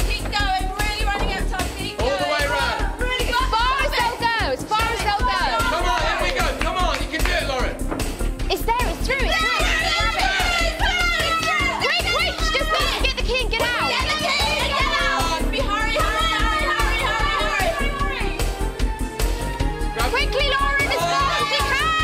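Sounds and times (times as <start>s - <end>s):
background music: 0.0s - 22.0s
people shouting excitedly: 2.0s - 6.6s, 8.8s - 18.4s, 20.0s - 22.0s.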